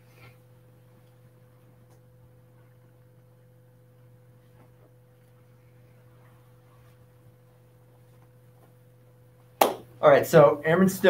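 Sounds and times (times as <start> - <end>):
faint steady hum: 0.0 - 11.0
man speaking: 10.0 - 11.0.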